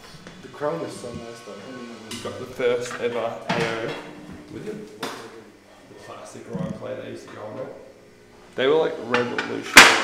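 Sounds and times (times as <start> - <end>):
indistinct voices talking: 0.5 - 9.7.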